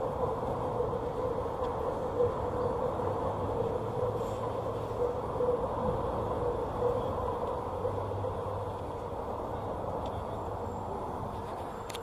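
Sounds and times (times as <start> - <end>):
train rumbling by: 0.0 - 11.9
continuous hum: 0.0 - 12.0.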